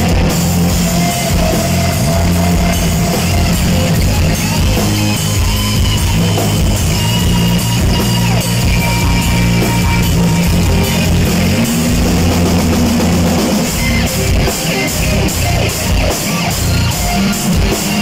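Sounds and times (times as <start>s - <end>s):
cymbals keeping a steady beat: 0.0s - 18.0s
drum kit: 0.0s - 18.0s
electric guitar: 0.0s - 18.0s.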